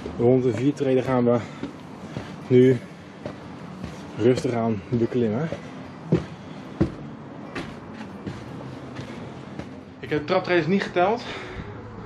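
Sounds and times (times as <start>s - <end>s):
footsteps on wooden stairs: 0.0s - 10.3s.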